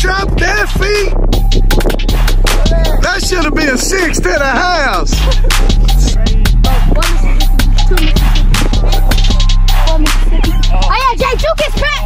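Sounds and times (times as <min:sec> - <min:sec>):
heavy bass: 0:00.0 - 0:12.0
hip hop beat: 0:00.0 - 0:12.0
hi-hat ticks: 0:01.4 - 0:04.3, 0:04.9 - 0:12.0.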